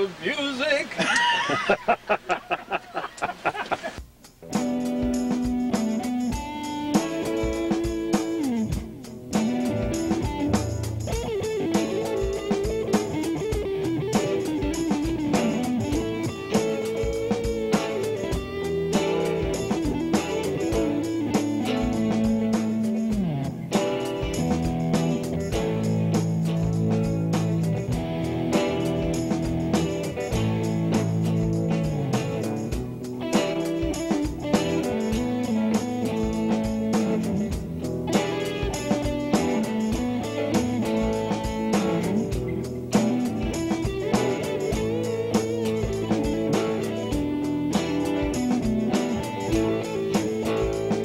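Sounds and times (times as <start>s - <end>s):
guitar-led background music: 1.8s - 51.0s.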